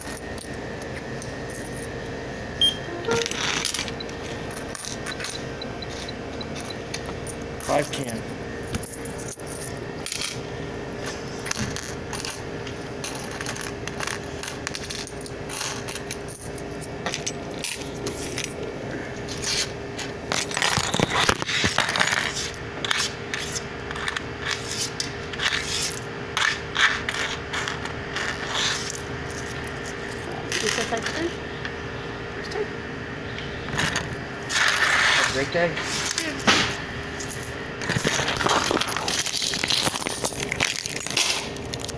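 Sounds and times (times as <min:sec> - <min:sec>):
coins clinking and clattering: 0:00.0 - 0:02.1, 0:02.9 - 0:10.4, 0:11.0 - 0:18.6, 0:19.3 - 0:31.3, 0:33.8 - 0:41.9
faint steady hum: 0:00.0 - 0:41.9.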